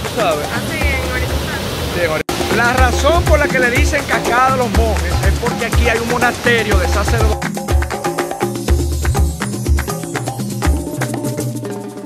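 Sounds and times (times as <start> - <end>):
waterfall rushing: 0.0 - 11.2
music with sung melody and bass beat: 2.3 - 12.0.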